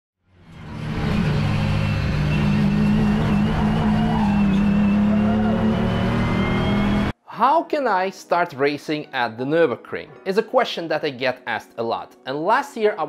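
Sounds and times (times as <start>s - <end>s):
race car engine at speed: 0.3s - 7.1s.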